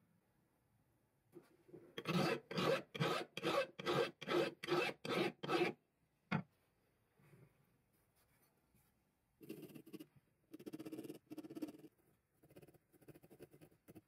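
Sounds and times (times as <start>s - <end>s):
block rasping on steel file: 2.0s - 5.8s.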